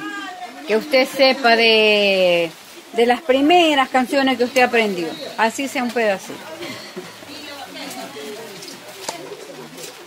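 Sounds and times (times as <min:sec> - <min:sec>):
faint voices: 0:00.0 - 0:10.0
low bird calls: 0:04.3 - 0:07.1.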